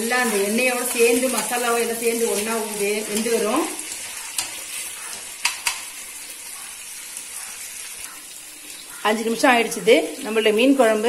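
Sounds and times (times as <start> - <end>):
fish sizzling in oil: 0.0 - 11.0
metal spatula clicking on pan: 5.4 - 5.9.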